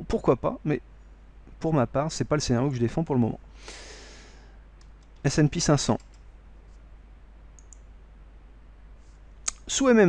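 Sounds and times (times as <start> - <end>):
low steady hum: 0.0 - 10.0
faint computer clicks: 4.8 - 5.3, 5.9 - 6.3, 7.5 - 7.9.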